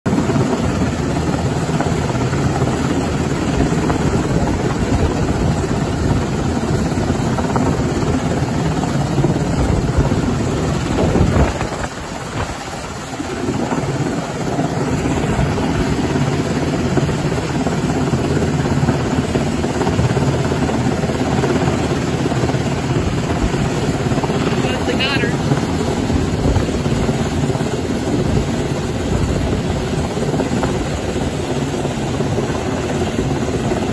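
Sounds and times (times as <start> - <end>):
helicopter hovering: 0.1 - 33.9.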